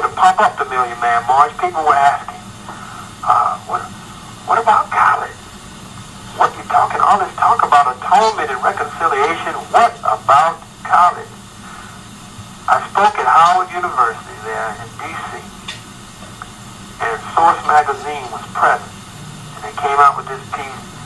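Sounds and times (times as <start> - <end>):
person talking tinny voice: 17.0 - 18.9, 19.6 - 21.0.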